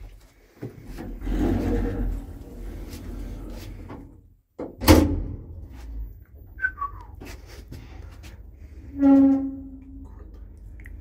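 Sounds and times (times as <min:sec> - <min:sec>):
loud door thud: 0:04.6 - 0:05.5.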